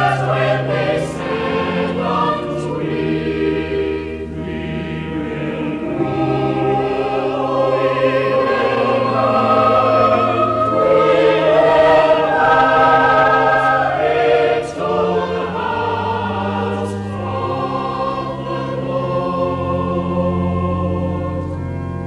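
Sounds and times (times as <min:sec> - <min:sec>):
choir singing sustained chords: 0:00.0 - 0:22.0
organ bass notes: 0:00.0 - 0:22.0.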